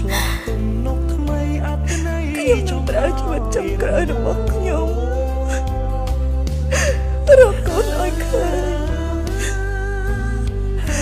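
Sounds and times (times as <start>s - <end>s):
soft background music: 0.0s - 11.0s
woman crying: 1.9s - 6.0s, 6.7s - 9.8s.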